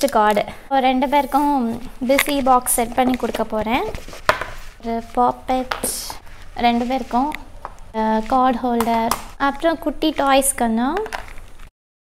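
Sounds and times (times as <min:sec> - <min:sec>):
woman speaking: 0:00.0 - 0:04.0, 0:04.8 - 0:11.2.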